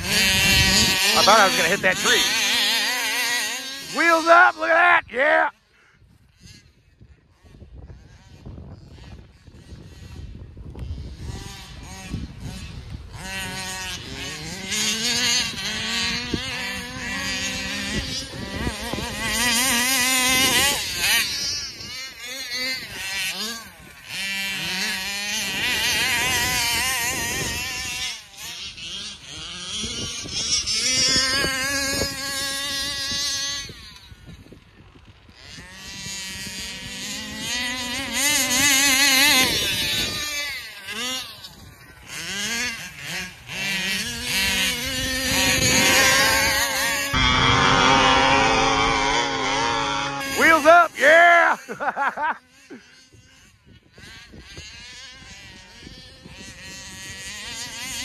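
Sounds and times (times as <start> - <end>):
rc car engines revving: 0.0 - 58.0.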